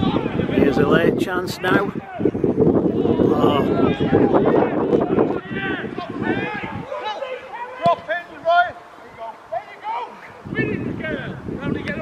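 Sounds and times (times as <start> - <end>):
players shouting: 0.0 - 12.0.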